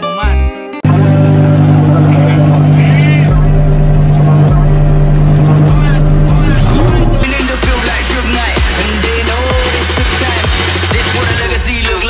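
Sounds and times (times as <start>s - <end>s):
car engine idling: 0.8s - 12.0s
electronic dance music: 0.8s - 12.0s
engine revving: 0.8s - 12.0s.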